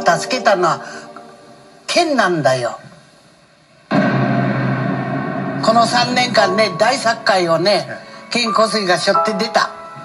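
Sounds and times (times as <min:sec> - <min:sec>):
dramatic boom with low drone: 0:03.9 - 0:08.5.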